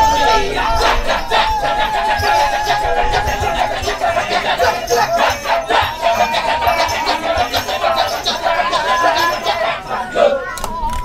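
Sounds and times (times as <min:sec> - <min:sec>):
men chanting in rhythm: 0:00.0 - 0:10.5
held wavering singing voice: 0:00.0 - 0:11.0.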